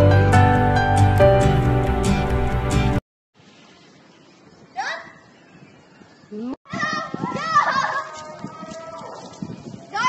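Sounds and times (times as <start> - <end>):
child's rising cry: 6.7 - 9.2
children shouting and squealing: 6.7 - 10.0.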